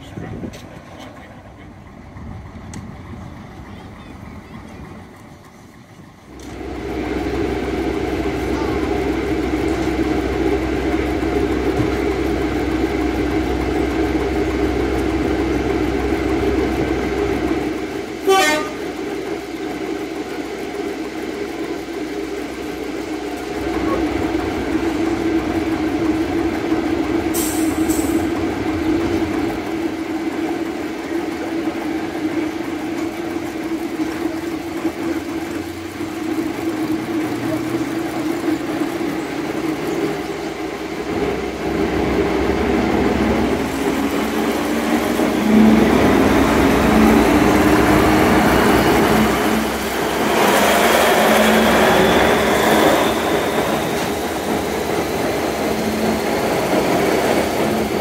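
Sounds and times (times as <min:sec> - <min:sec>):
train diesel engines running: 0:00.0 - 0:58.0.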